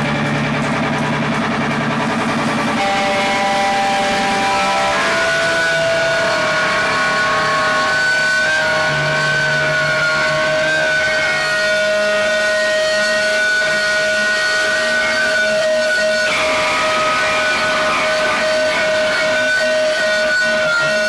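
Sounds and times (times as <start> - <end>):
low bass note: 0.0 - 12.4
distorted electric guitars: 0.0 - 21.0.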